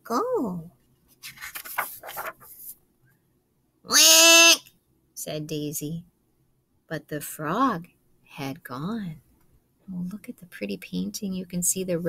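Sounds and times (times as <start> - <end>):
page turning rustle: 1.1 - 2.8.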